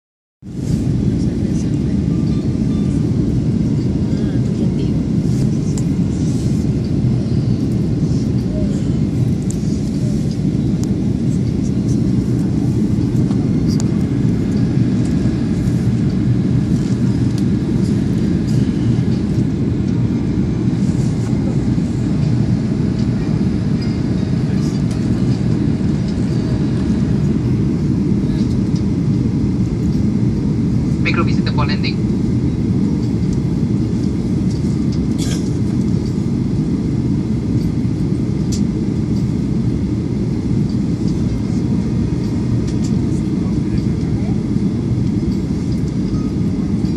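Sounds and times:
airliner cabin rumble: 0:00.5 - 0:46.9.

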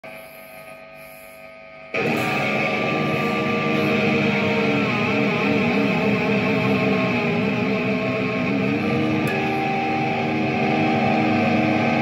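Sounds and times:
low mains hum: 0:00.0 - 0:12.0
electric guitar with bending notes: 0:01.7 - 0:12.0.

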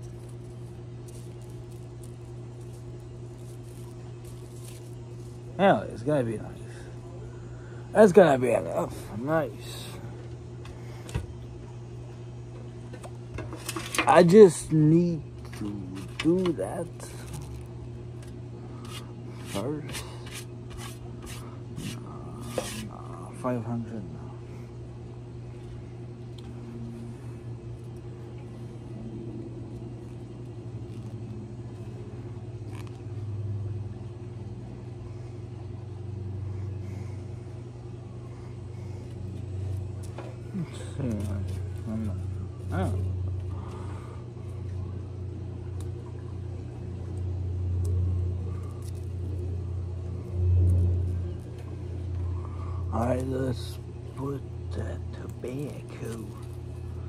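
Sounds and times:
steady low rumble: 0:00.0 - 0:57.0.

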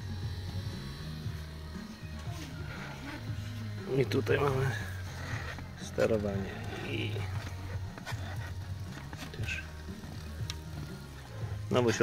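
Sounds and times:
electric motor humming: 0:00.0 - 0:12.0.

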